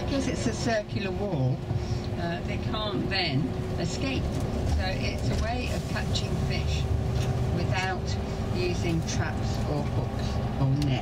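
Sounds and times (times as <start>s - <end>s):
bus engine and tyres rumbling: 0.0s - 11.0s.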